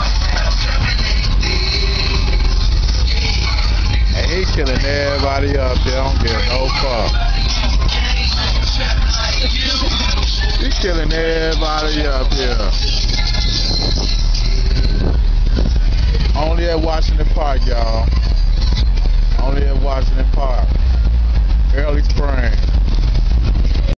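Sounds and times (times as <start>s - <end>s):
cars rumbling past: 0.0s - 24.0s
voices calling out: 3.2s - 19.6s.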